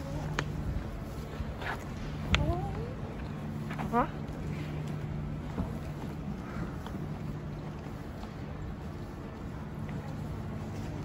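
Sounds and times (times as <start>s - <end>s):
low rumble with faint hum: 0.0s - 11.0s.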